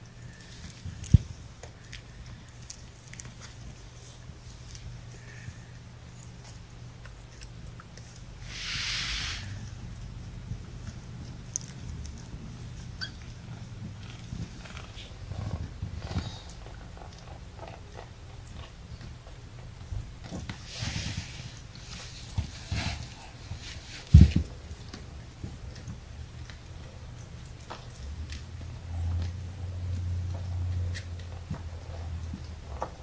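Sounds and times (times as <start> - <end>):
kittens rustling on bedding: 0.0 - 33.0
low steady hum: 0.0 - 33.0
hissy rustles: 7.9 - 16.6, 20.2 - 27.9.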